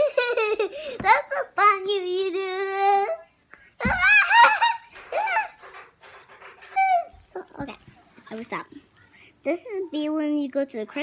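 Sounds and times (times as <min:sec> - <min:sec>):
young child laughing: 0:00.0 - 0:01.0.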